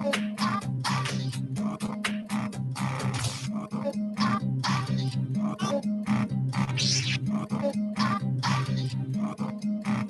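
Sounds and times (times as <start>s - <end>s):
electronic dance music: 6.8s - 7.2s.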